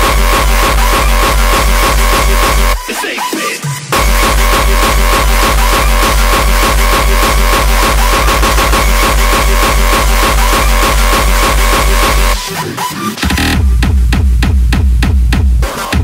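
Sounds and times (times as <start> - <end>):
fast heavy kick drum: 0.0 - 3.0, 3.7 - 12.5, 13.2 - 16.0
high synth line: 0.0 - 12.7
hardcore electronic dance music: 0.0 - 16.0.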